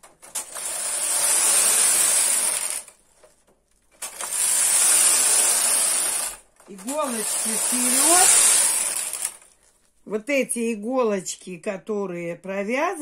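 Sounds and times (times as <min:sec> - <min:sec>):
knitting machine carriage rushing: 0:00.0 - 0:03.0, 0:04.0 - 0:09.5.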